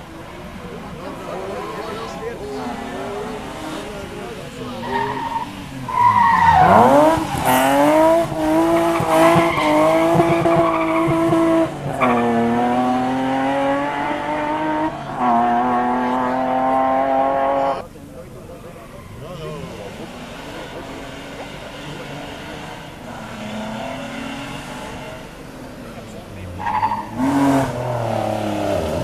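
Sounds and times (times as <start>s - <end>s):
rally car engine revving: 0.0s - 29.0s
tyres squealing: 1.4s - 11.4s, 26.5s - 27.6s.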